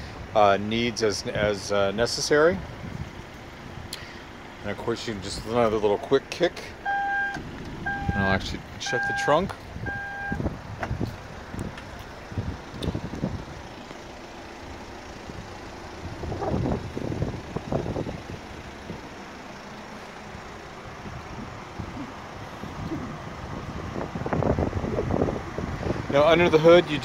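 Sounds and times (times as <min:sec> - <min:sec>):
wind on microphone: 0:09.8 - 0:13.5, 0:16.0 - 0:19.0, 0:21.0 - 0:26.2.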